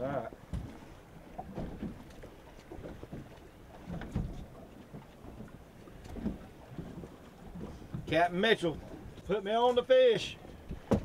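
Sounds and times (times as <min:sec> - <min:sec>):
water against boat hull: 0:00.0 - 0:11.0
wind: 0:00.0 - 0:11.0.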